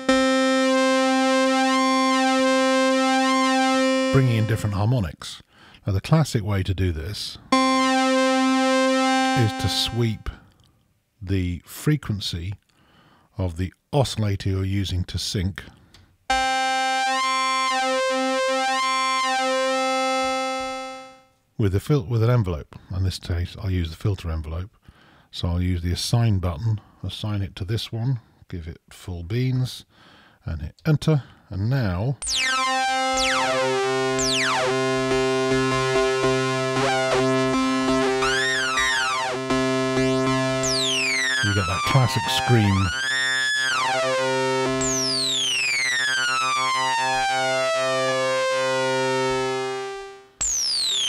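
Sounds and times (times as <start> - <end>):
synthesizer note with shifting tone: 0.0 - 4.9, 7.5 - 10.4, 16.3 - 21.3, 32.2 - 51.0.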